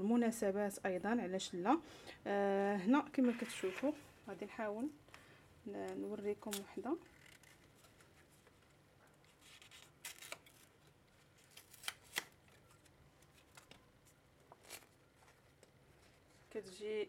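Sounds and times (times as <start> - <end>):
paper liner crinkling: 6.4 - 16.5.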